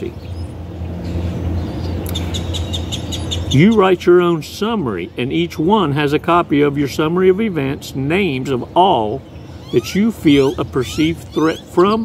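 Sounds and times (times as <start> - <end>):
steady low hum: 0.0 - 12.0
bird chirping rapidly: 0.1 - 5.8, 8.2 - 12.0.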